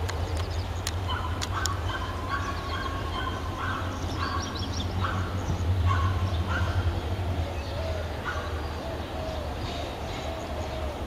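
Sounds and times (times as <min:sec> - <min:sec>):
diesel locomotive engine rumbling: 0:00.0 - 0:11.0.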